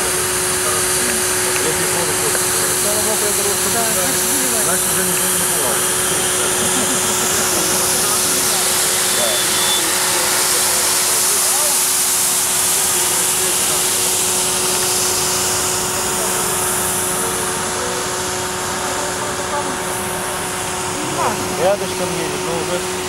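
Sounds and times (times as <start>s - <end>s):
floor scrubber suction motor whine: 0.0s - 23.0s.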